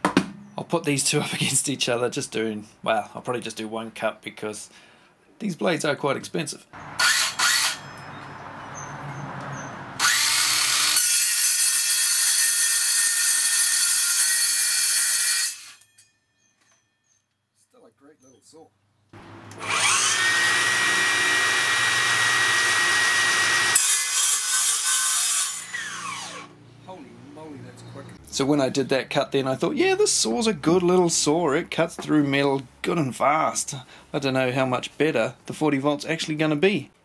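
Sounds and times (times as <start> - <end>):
circular saw cutting steel: 6.8 - 8.2, 10.0 - 16.1, 19.5 - 26.5
motor high whine: 19.2 - 23.7, 25.6 - 26.6.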